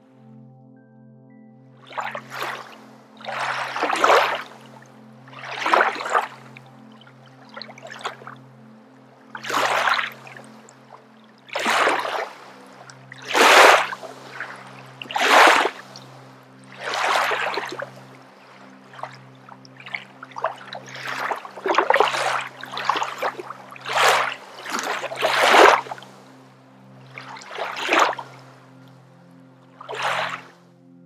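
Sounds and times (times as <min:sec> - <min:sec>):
soft background music drone: 0:00.0 - 0:31.0.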